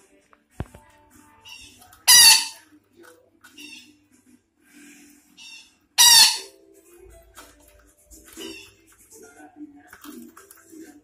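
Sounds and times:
parakeet screeching: 1.4 - 2.6, 3.6 - 3.9, 5.4 - 6.5, 8.4 - 8.8.

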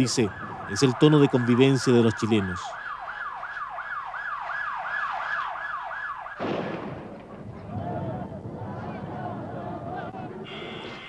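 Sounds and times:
siren rising and falling sweeps: 0.0 - 6.4.

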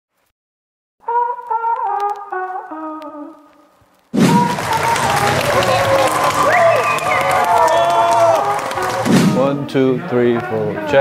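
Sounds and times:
music: 1.0 - 11.0
horn descending notes: 4.2 - 9.8
crowd noise: 4.2 - 11.0
voices: 4.4 - 11.0.

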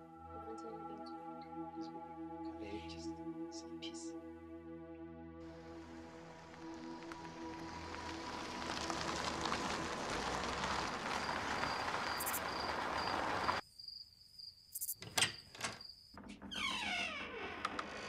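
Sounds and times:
cricket chirping: 10.2 - 16.2.

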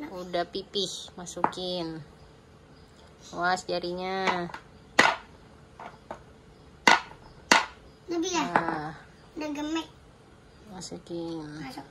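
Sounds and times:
pestle striking on wooden board: 4.2 - 6.2, 6.8 - 7.8.

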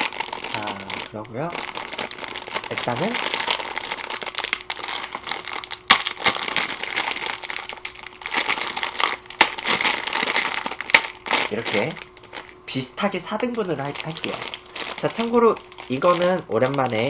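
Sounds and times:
plastic packet crinkling: 0.0 - 17.0.

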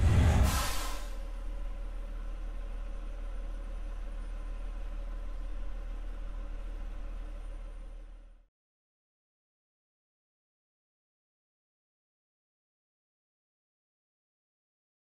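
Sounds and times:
loud rush of noise: 0.0 - 1.1.

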